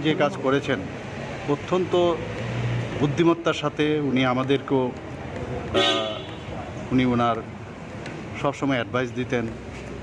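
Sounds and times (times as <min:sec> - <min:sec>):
outdoor background noise: 0:00.0 - 0:10.0
vehicle horn toot: 0:05.8 - 0:06.4.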